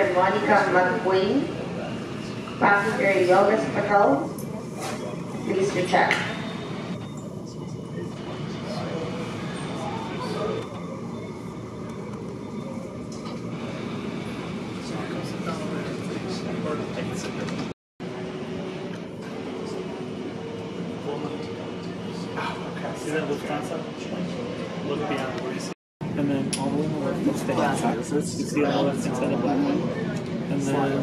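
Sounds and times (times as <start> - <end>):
faint voices: 0.0 - 31.0.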